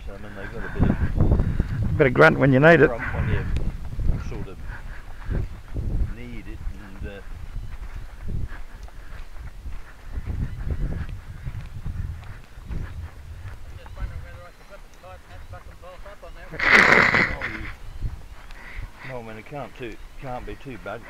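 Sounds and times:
wind buffeting microphone: 0:00.0 - 0:21.0
faint voices: 0:12.2 - 0:21.0.

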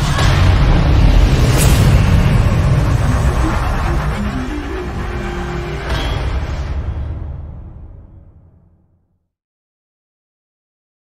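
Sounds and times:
deep low rumble: 0:00.0 - 0:08.4
sharp hit: 0:00.0 - 0:08.6
short synth notes: 0:02.3 - 0:07.2.

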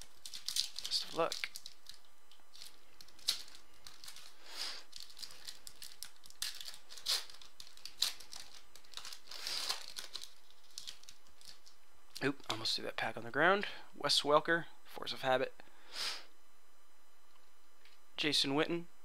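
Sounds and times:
foil wrapper crinkling and tearing: 0:00.0 - 0:12.3.

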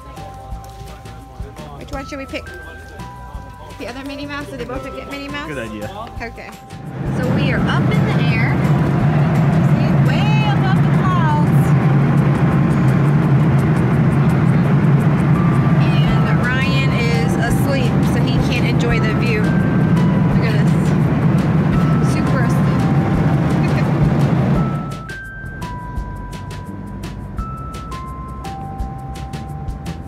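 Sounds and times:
background music: 0:00.0 - 0:30.0
airliner cabin noise: 0:06.1 - 0:30.0.

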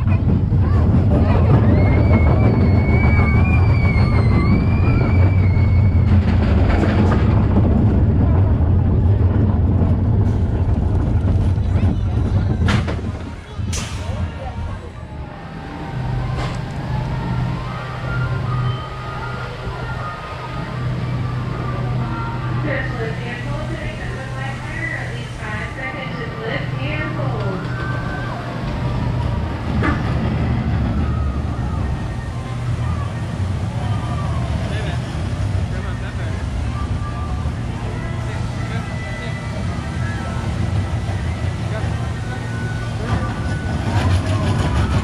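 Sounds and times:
steady low rumble: 0:00.0 - 0:45.0.

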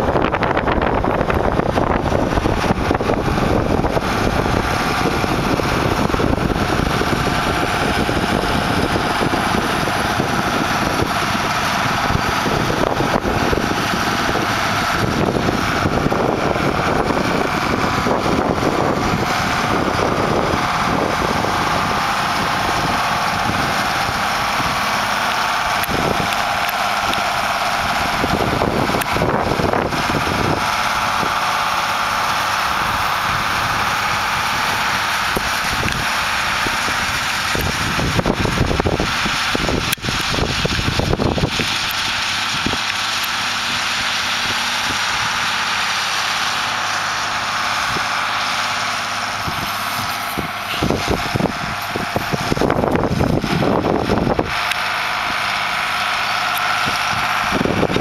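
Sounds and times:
tractor diesel engine under load: 0:00.0 - 0:58.0
wind buffeting microphone: 0:00.0 - 0:58.0.

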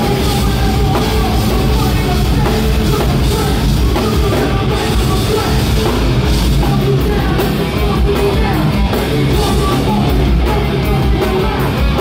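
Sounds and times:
distorted guitars: 0:00.0 - 0:12.0
drums: 0:00.0 - 0:12.0.

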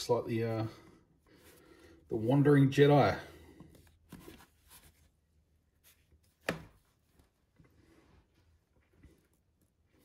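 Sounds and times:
cloth rustling and scraping: 0:03.7 - 0:10.0.

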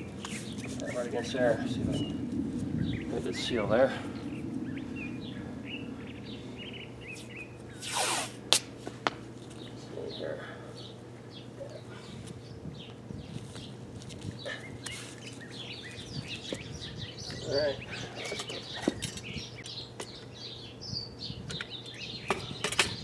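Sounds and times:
small birds chirping: 0:00.0 - 0:08.2, 0:09.4 - 0:23.0
steady low hum: 0:00.0 - 0:23.0.

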